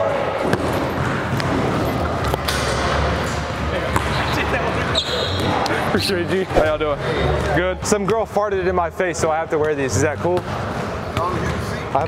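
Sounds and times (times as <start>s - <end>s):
basketballs bouncing on court: 0.4s - 2.4s, 3.8s - 4.3s.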